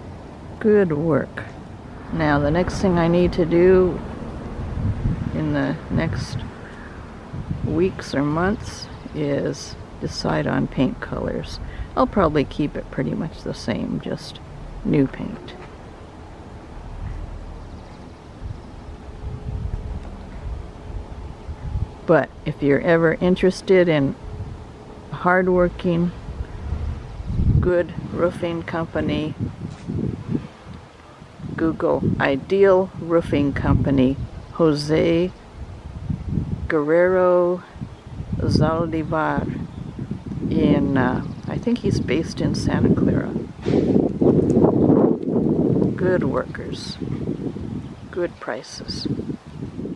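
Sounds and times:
wind buffeting microphone: 0.0s - 49.9s.

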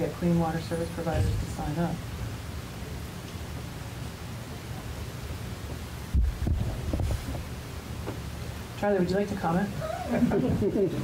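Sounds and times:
low hum: 0.0s - 8.8s
dull low thump: 6.1s - 7.5s.

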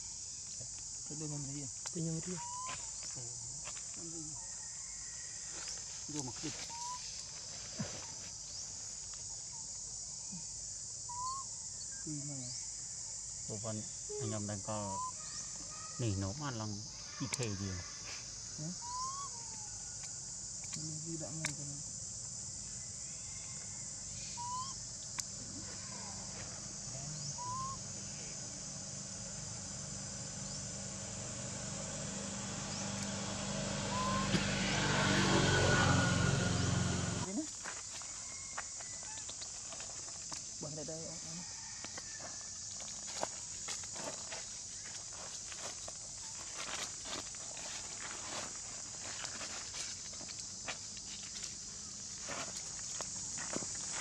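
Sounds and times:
insects droning: 0.0s - 54.0s
short whistled call: 24.3s - 24.8s, 27.4s - 27.8s, 33.9s - 34.4s
high-pitched drone: 26.9s - 37.3s
footsteps rustling dry leaves: 41.6s - 54.0s.

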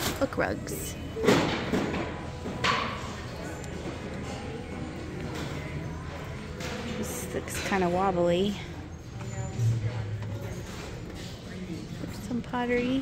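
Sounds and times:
shop background hum: 0.0s - 13.0s.

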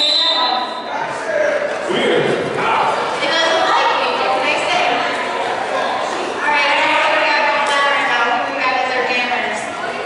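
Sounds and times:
referee whistle blast: 0.0s - 0.9s
voices echoing in a gym: 0.0s - 10.0s.

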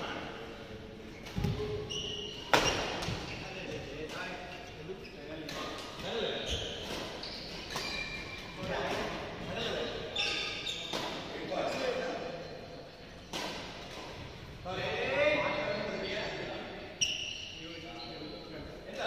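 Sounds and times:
voices talking in echoing hall: 0.0s - 19.0s.

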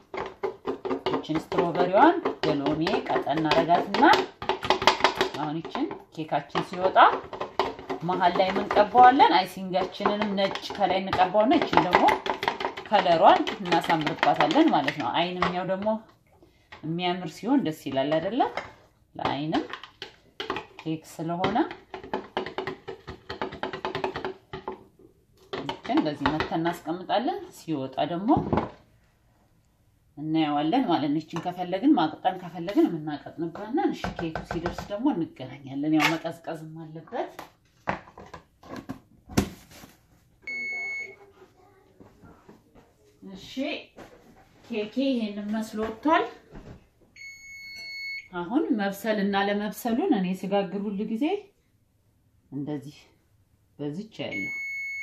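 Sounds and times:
woman speaking: 1.2s - 4.3s, 5.2s - 7.2s, 8.0s - 12.2s, 12.8s - 16.1s, 16.8s - 18.6s, 19.2s - 19.7s, 20.8s - 21.8s, 25.6s - 28.6s, 30.2s - 37.4s, 43.2s - 44.0s, 44.6s - 46.4s, 48.3s - 51.5s, 52.5s - 53.2s, 53.8s - 54.6s.

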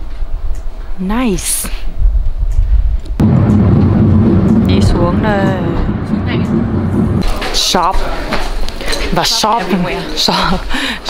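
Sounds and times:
wind buffeting microphone: 1.8s - 9.2s
steady low hum: 3.2s - 8.8s.

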